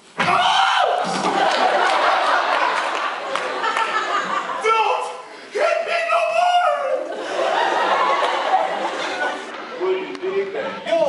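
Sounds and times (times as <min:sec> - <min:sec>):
people laughing: 0:01.0 - 0:05.2, 0:06.7 - 0:10.4
people talking: 0:04.6 - 0:07.1, 0:08.9 - 0:11.0.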